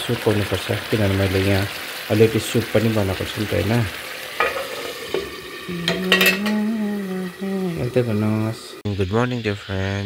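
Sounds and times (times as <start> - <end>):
steel lid clattering on pan: 4.3 - 6.6.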